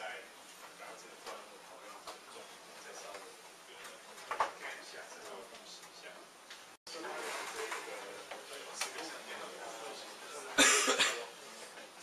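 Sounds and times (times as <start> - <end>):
faint background voices: 6.9 - 12.0
person coughing: 10.6 - 11.3.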